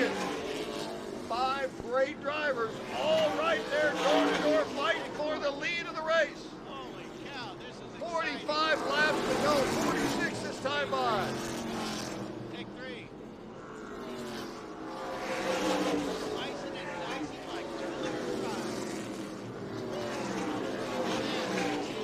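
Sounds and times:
stock cars racing: 0.0 - 22.0.

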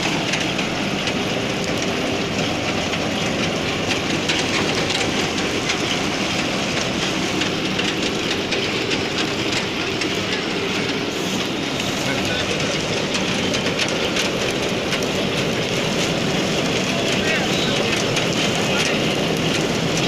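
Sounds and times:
combine harvester running: 0.0 - 20.0
fast mechanical clatter: 0.0 - 20.0.

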